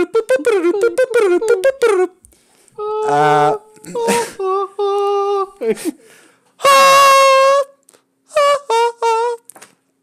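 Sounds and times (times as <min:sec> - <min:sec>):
man singing high note: 0:00.0 - 0:02.2, 0:02.8 - 0:05.7, 0:06.6 - 0:09.4.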